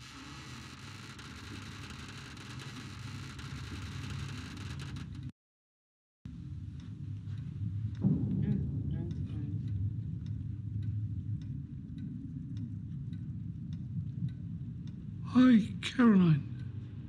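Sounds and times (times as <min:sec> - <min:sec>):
low steady hum: 0:06.3 - 0:17.0
clock ticking: 0:06.7 - 0:17.0.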